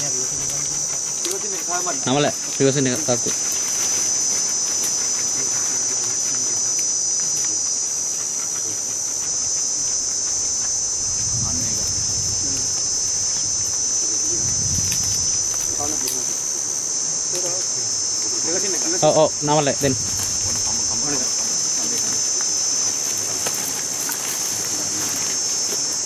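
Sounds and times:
faint low rumbles: 0.0s - 26.0s
insects trilling: 0.0s - 26.0s.

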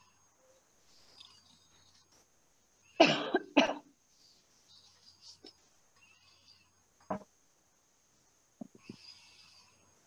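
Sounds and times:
person coughing: 3.0s - 3.9s.

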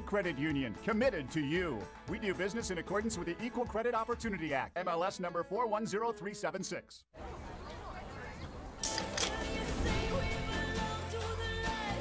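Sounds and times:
pop music: 8.8s - 12.0s.

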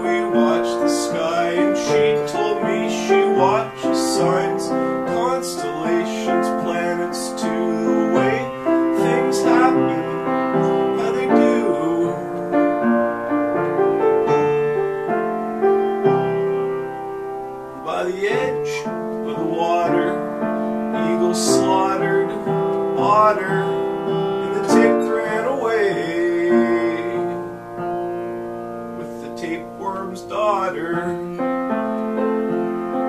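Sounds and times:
piano playing chords and melody: 0.0s - 33.0s.

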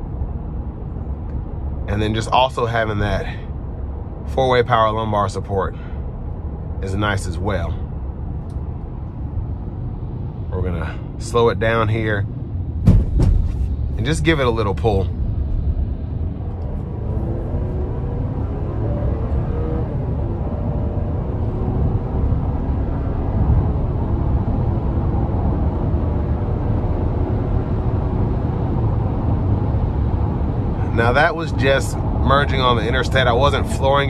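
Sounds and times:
road rumble: 0.0s - 34.0s
car engine accelerating: 10.6s - 34.0s.

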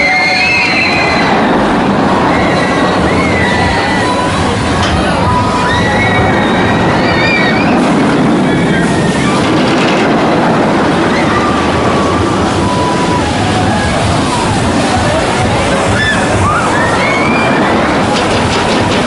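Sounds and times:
high-pitched wheel squeals: 0.0s - 4.5s, 5.2s - 9.4s
roller coaster rumbling on track: 0.0s - 19.0s.

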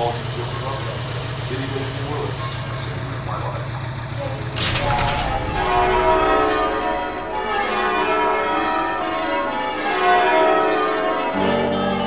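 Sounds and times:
church bells pealing: 0.0s - 12.0s.

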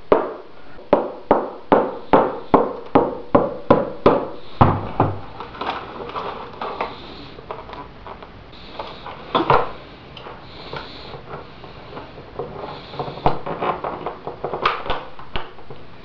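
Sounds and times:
clicks and knocks of fiberglass: 8.9s - 15.9s.

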